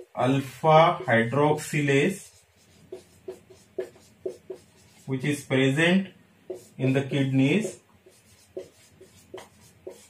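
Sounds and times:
marker scratching on whiteboard: 0:00.0 - 0:05.8, 0:06.4 - 0:10.0.

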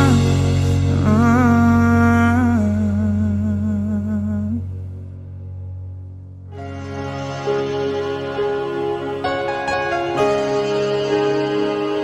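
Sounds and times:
soft pop backing music: 0:00.0 - 0:12.0.

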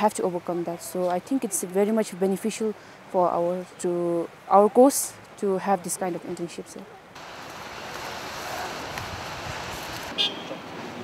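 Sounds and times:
distant road traffic: 0:00.0 - 0:11.0.

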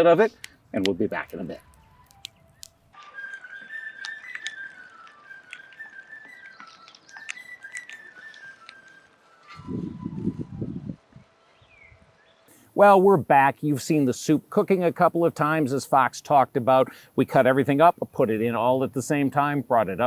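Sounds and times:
wood fire crackling: 0:00.0 - 0:10.4
fife melody: 0:00.0 - 0:11.6.

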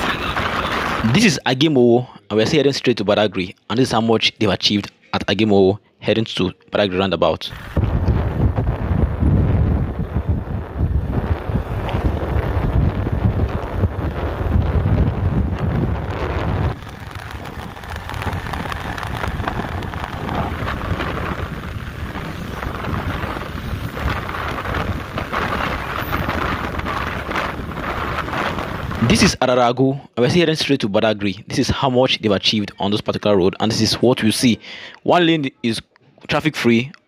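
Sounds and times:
road noise: 0:00.0 - 0:01.3, 0:07.5 - 0:29.2
wind buffeting microphone: 0:07.5 - 0:29.3.

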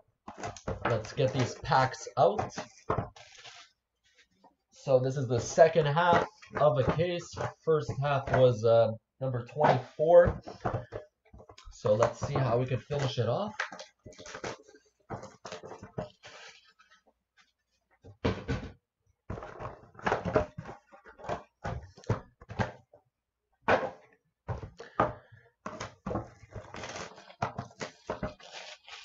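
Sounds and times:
cardboard boxes knocking and rustling: 0:09.5 - 0:16.6, 0:18.1 - 0:22.9, 0:23.7 - 0:29.0.

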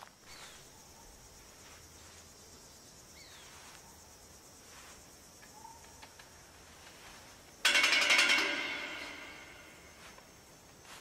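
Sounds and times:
insects: 0:00.0 - 0:11.0.

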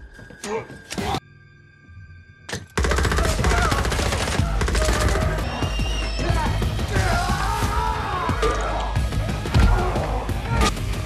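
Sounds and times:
action film music: 0:00.0 - 0:11.0.

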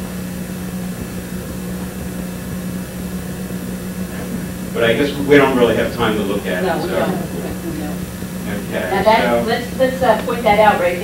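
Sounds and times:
low hum: 0:00.0 - 0:10.7
background hiss: 0:03.4 - 0:11.0.

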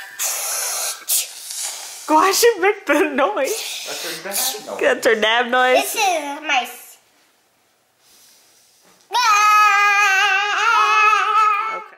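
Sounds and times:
faint breathy hiss: 0:00.0 - 0:02.4, 0:03.4 - 0:04.8, 0:08.0 - 0:09.1.

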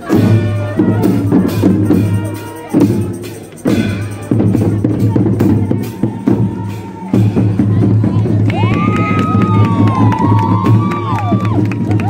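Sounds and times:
marching band music with drums: 0:00.0 - 0:12.0
crowd cheering and whooping: 0:08.5 - 0:12.0.

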